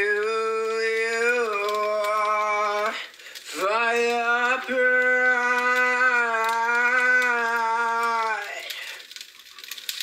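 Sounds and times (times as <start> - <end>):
faint hiss: 0.8 - 5.2
man singing long note: 3.6 - 8.6.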